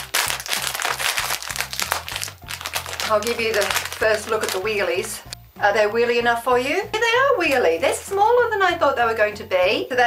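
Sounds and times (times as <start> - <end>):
plastic snack packet crinkling: 0.0 - 5.3
background music: 0.0 - 10.0.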